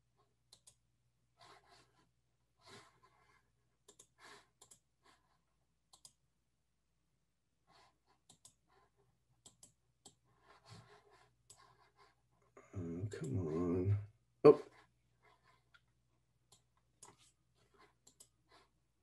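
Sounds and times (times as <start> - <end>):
mouse and keyboard clicks: 0.5 - 0.8, 3.8 - 4.9, 5.9 - 6.2, 8.2 - 8.6, 9.4 - 10.2, 16.5 - 18.3.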